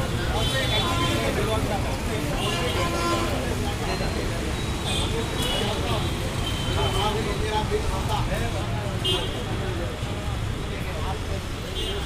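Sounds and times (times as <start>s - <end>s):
chatter of many voices: 0.0s - 12.0s
road traffic rumble: 0.0s - 12.0s.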